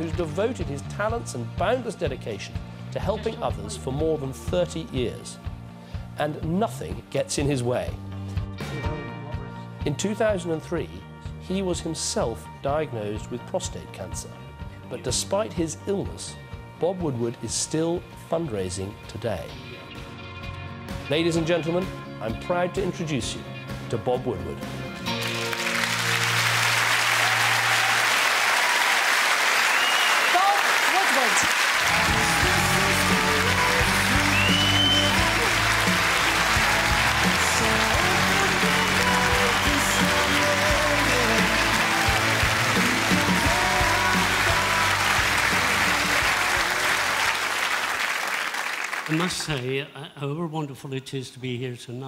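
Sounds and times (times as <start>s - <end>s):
band music: 0.0s - 13.5s, 18.1s - 28.2s, 29.7s - 48.0s
large audience applauding: 25.1s - 49.7s.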